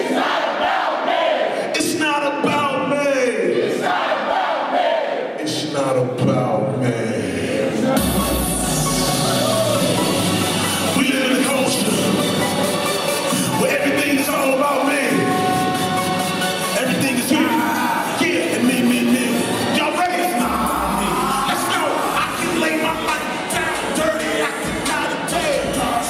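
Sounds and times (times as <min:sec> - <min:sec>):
crowd yelling in unison: 0:00.0 - 0:01.8, 0:03.5 - 0:05.4, 0:07.7 - 0:12.2, 0:17.1 - 0:26.0
hip-hop backing track over pa: 0:07.9 - 0:26.0.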